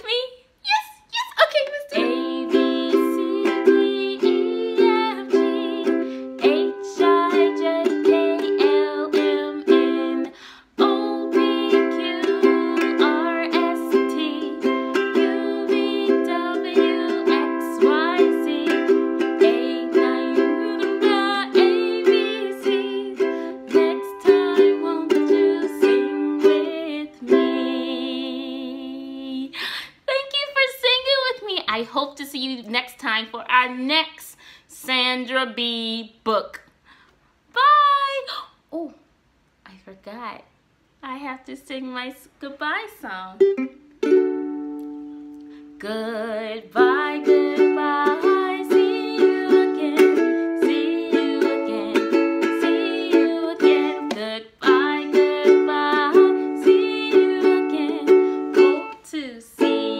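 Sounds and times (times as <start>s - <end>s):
ukulele strumming: 1.9s - 28.7s, 43.4s - 59.9s.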